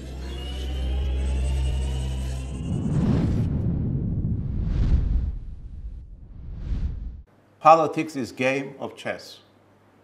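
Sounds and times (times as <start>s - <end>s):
low steady drone: 0.0s - 4.3s
rough rumble: 2.4s - 7.3s.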